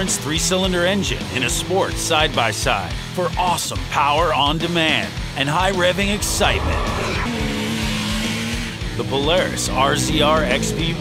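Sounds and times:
background music: 0.0s - 11.0s
vehicle engine note: 5.6s - 8.6s.

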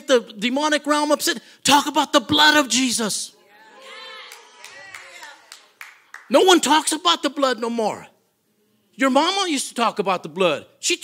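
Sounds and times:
hand claps: 4.3s - 6.3s.

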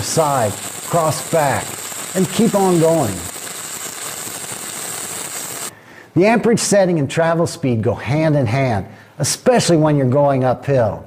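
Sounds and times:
welding arc sizzling: 0.0s - 5.7s.

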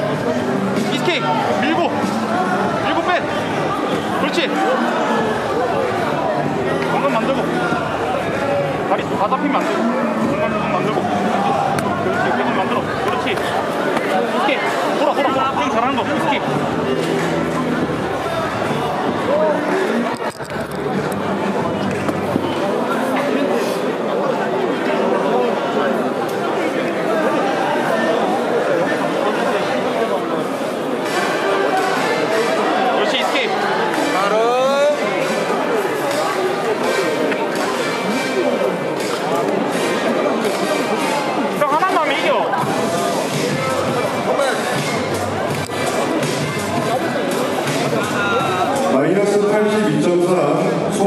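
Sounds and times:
music playing: 0.0s - 24.0s, 31.0s - 51.0s
babble of people talking: 0.0s - 51.0s
hubbub of overlapping voices: 0.0s - 51.0s.

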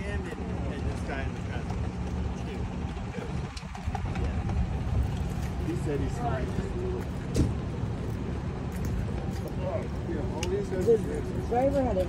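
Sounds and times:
people talking: 0.0s - 7.6s, 8.8s - 12.0s
fire engine idling: 0.0s - 12.0s.

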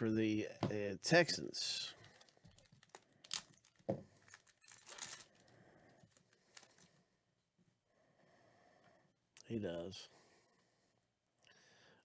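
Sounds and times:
card pack wrapper crinkling: 2.0s - 6.9s.

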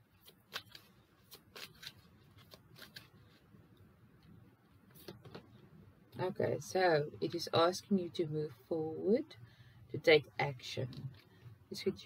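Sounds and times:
cards shuffling: 0.1s - 3.4s.

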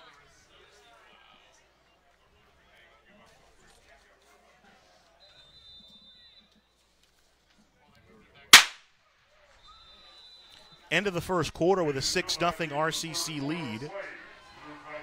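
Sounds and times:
sharp crack: 8.6s - 8.8s.

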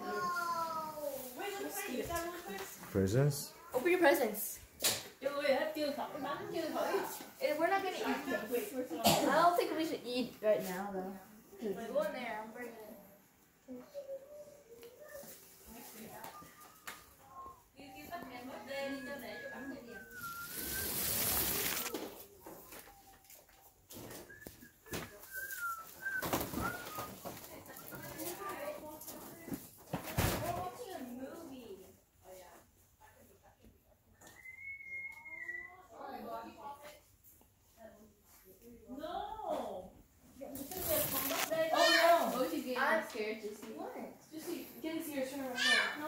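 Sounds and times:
chatter of children and adults: 0.0s - 20.5s, 27.0s - 32.0s
rustling: 19.9s - 30.7s, 40.4s - 43.0s.

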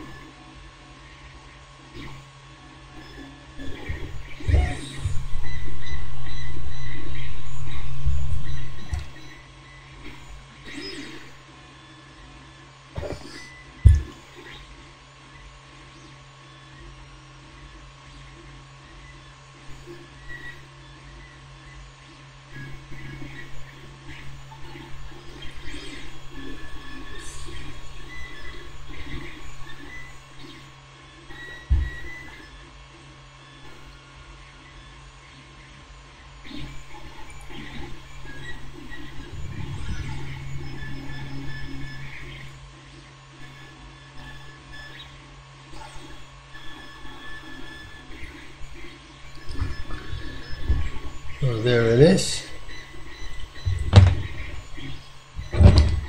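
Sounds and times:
steady electrical hum: 0.0s - 56.0s.

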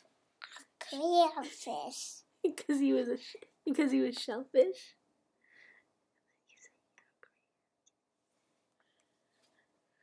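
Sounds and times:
faint whispering: 6.2s - 7.6s.

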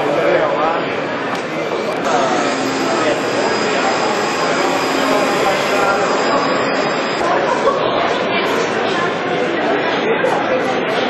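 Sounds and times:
people's voices: 0.0s - 11.0s
machine noise with high whine: 1.8s - 9.0s.

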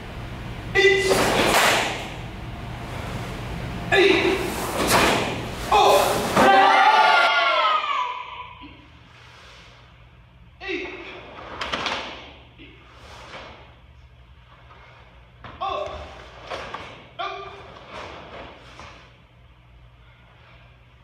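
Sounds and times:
people shouting in unison: 5.7s - 8.7s.

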